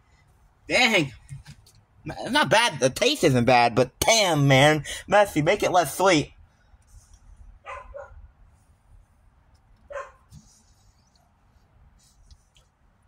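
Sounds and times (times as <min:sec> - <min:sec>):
dog barking: 0:07.6 - 0:08.2, 0:09.9 - 0:10.3.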